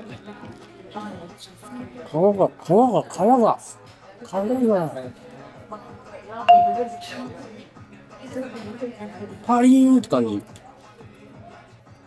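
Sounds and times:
bright bell-like chime: 0:06.5 - 0:07.3.

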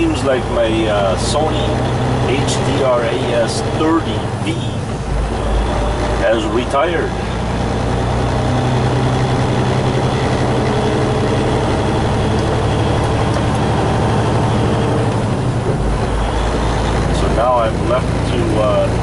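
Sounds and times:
truck diesel engine drone: 0:00.0 - 0:19.0.

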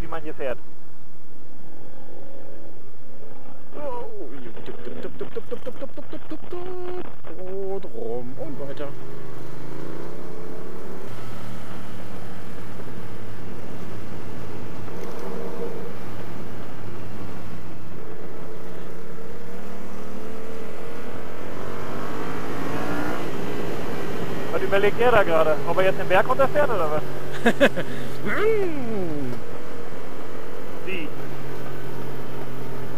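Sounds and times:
motorcycle engine running: 0:00.6 - 0:32.9.

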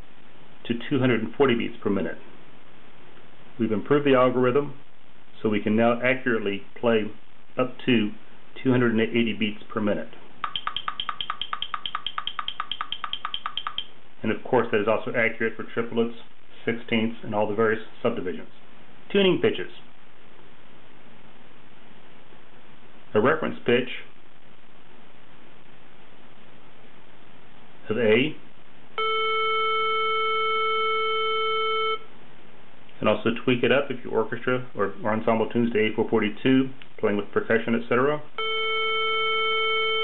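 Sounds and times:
fast metronome clicks: 0:10.4 - 0:14.0.

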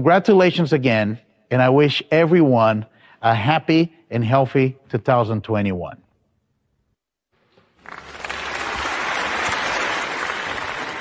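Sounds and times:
audience applauding: 0:07.8 - 0:11.0.

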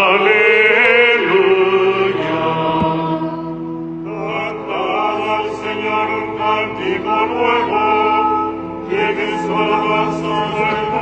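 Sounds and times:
sustained accompanying notes: 0:00.0 - 0:11.0
voices chanting: 0:00.0 - 0:11.0.

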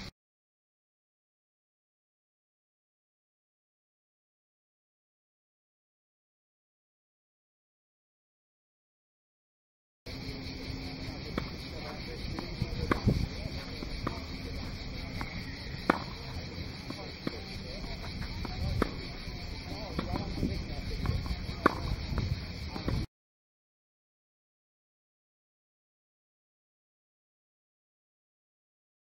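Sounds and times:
high insect buzz: 0:10.1 - 0:23.1
racket hitting tennis ball: 0:11.3 - 0:23.0.

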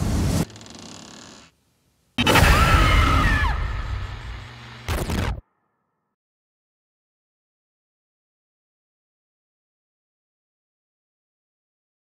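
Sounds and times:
tape static burst: 0:03.8 - 0:05.4.

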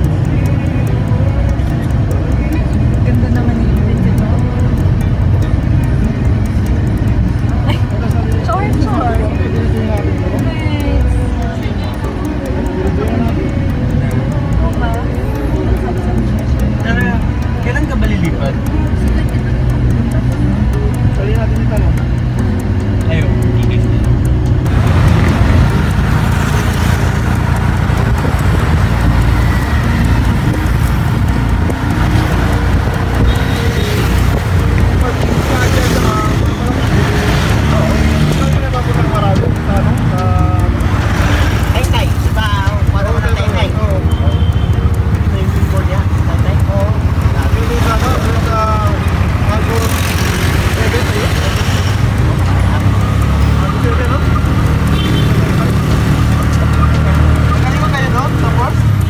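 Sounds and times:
indistinct voices: 0:00.0 - 0:59.0
vehicle rumble from inside: 0:18.3 - 0:59.0.

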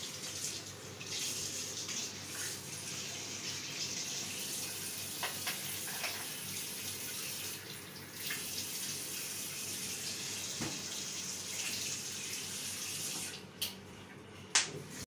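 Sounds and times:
tap running into washbasin: 0:04.0 - 0:09.3, 0:10.4 - 0:11.9, 0:12.6 - 0:13.7.

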